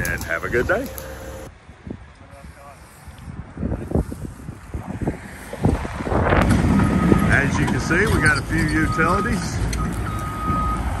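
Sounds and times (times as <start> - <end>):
engine noise: 0.0 - 1.5
wind buffeting microphone: 1.5 - 11.0.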